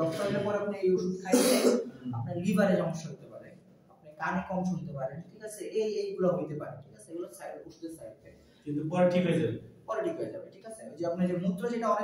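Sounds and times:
man talking: 0:00.0 - 0:12.0
man clearing his throat: 0:01.3 - 0:02.0.

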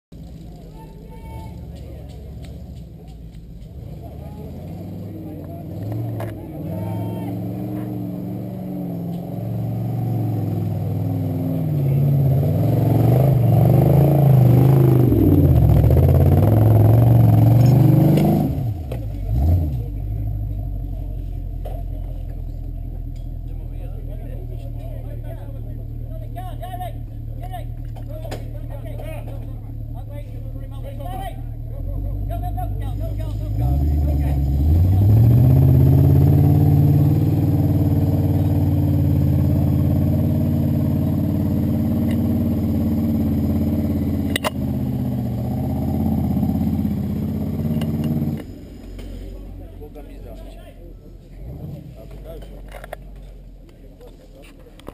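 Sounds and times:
off-road vehicle engine revving: 0:00.2 - 0:54.9.

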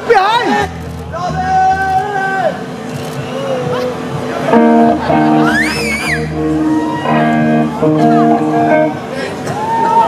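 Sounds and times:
electric guitars playing chords: 0:04.4 - 0:09.4
high sliding guitar tone: 0:04.5 - 0:09.2.

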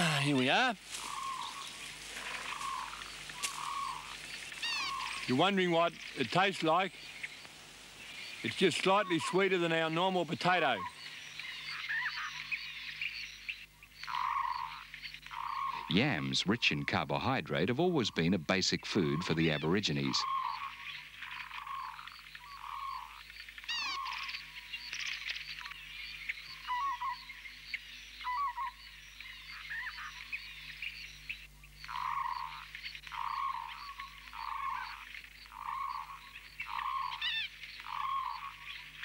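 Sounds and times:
frog croaking: 0:00.0 - 0:07.5, 0:08.1 - 0:39.0
bird chirps: 0:00.0 - 0:17.0, 0:19.0 - 0:39.0.

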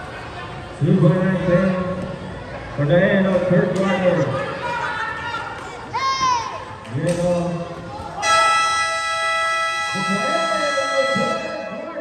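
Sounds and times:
voices of crowd: 0:00.0 - 0:12.0
scoreboard buzzer tone: 0:08.2 - 0:11.9.

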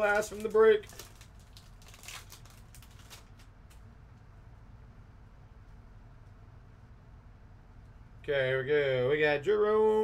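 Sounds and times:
wrapper crinkling and tearing: 0:00.0 - 0:03.8.

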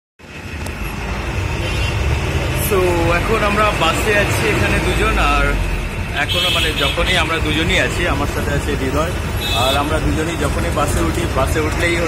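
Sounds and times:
bus engine and road rumble: 0:00.2 - 0:12.0.

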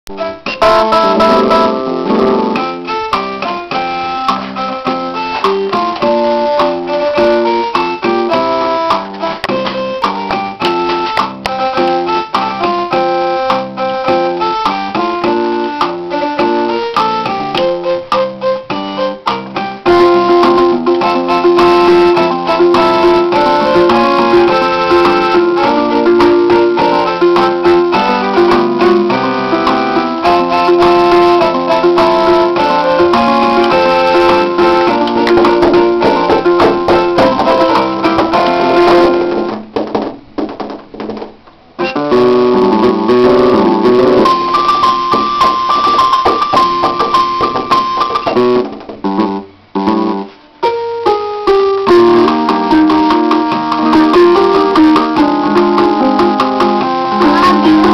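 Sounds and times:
electronic keyboard notes and chords: 0:00.1 - 0:57.9.

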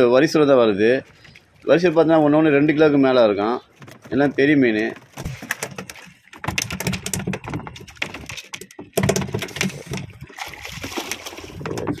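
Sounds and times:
water splashing against hull: 0:00.0 - 0:12.0
knocks and clatter in a boat: 0:03.4 - 0:12.0.

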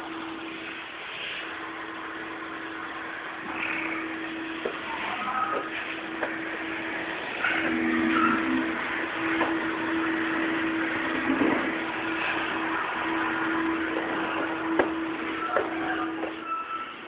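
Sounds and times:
floor-cleaning machine humming: 0:00.0 - 0:17.0.

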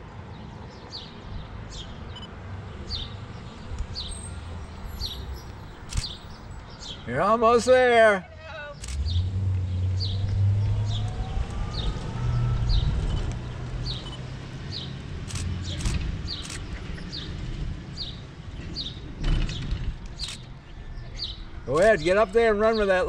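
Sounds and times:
road traffic engine rumble: 0:00.0 - 0:23.0
bird chirping: 0:00.4 - 0:07.7, 0:08.7 - 0:17.4.

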